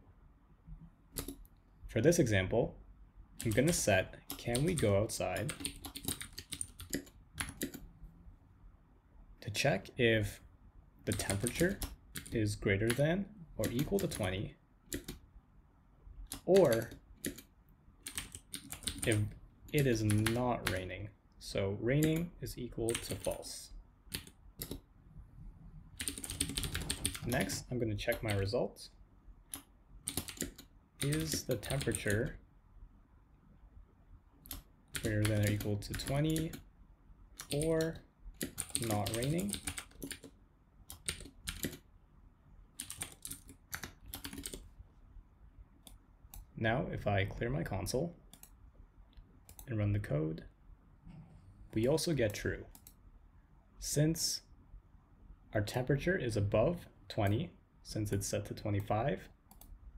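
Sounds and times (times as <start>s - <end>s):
computer keyboard typing: 1.1s - 1.4s, 3.4s - 7.8s, 11.1s - 13.0s, 13.6s - 15.2s, 16.3s - 20.8s, 22.9s - 23.5s, 24.1s - 24.8s, 26.0s - 28.5s, 29.5s - 32.3s, 34.4s - 36.6s, 37.4s - 41.8s, 42.8s - 44.7s, 48.3s - 48.6s, 49.5s - 49.7s.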